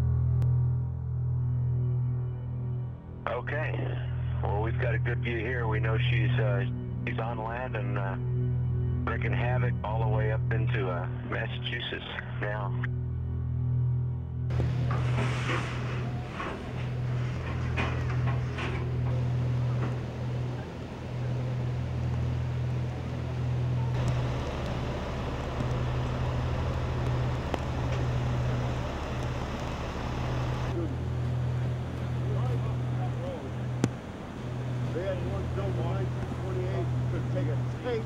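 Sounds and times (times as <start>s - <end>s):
steady low hum: 0.0s - 38.0s
river rushing: 19.1s - 35.6s.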